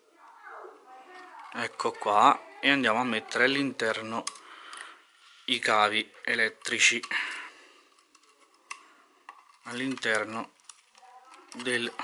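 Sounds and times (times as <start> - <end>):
wires rustling: 0.0 - 12.0
small plastic clicks: 6.6 - 12.0.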